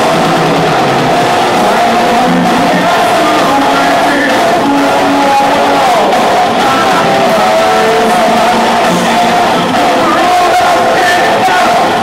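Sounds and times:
drums: 0.0 - 12.0
heavy metal band playing live: 0.0 - 12.0
loud electric guitars: 0.0 - 12.0.

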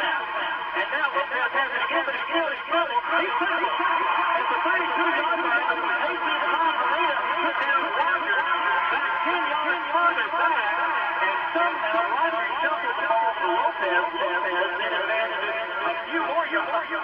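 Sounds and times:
man giving sports commentary: 0.0 - 17.0.

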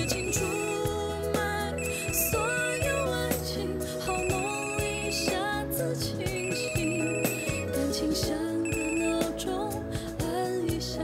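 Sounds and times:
phone ringing with pulsing beeps: 0.0 - 0.8, 1.8 - 3.2, 4.2 - 5.0, 6.3 - 7.8, 8.6 - 9.3
melodic music: 0.0 - 11.0.

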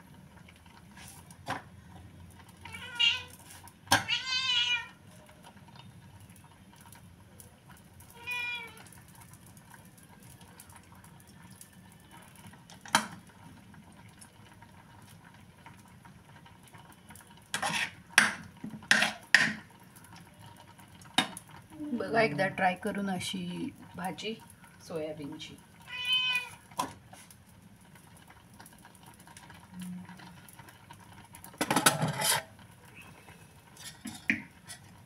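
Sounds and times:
cat meowing: 2.6 - 3.4, 4.0 - 5.0, 8.1 - 8.9, 25.8 - 26.6
utensils clattering: 31.6 - 32.5, 33.8 - 34.9.

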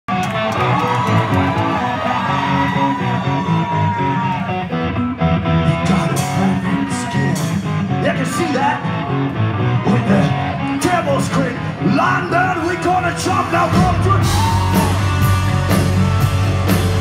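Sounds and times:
live rock band: 0.1 - 17.0.

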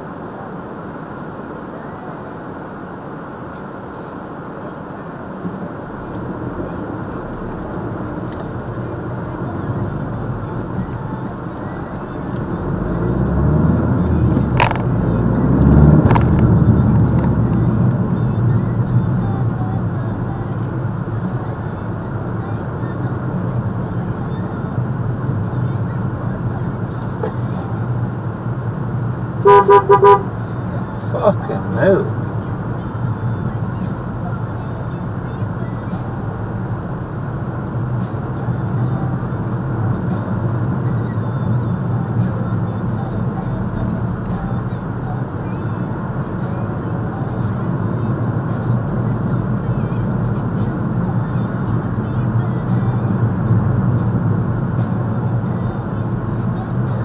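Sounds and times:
car engine and road noise: 0.0 - 57.0
car horn honking: 29.4 - 30.5.

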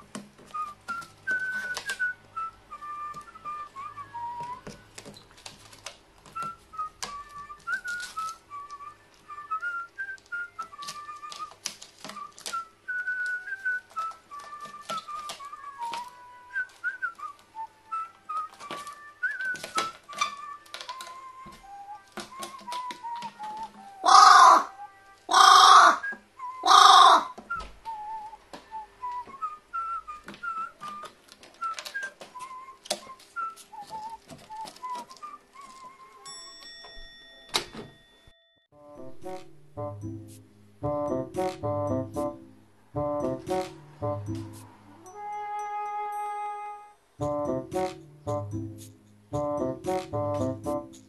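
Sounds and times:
whistled background music: 0.0 - 5.3, 6.3 - 51.0
crow cawing: 24.0 - 24.7, 25.3 - 27.4.

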